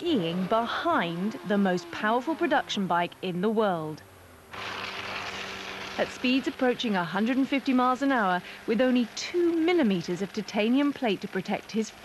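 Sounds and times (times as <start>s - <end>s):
motorcycle running: 0.0s - 12.0s.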